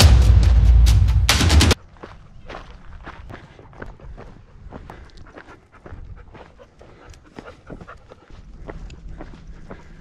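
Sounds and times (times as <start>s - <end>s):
footsteps crunching on gravel: 1.8s - 10.0s.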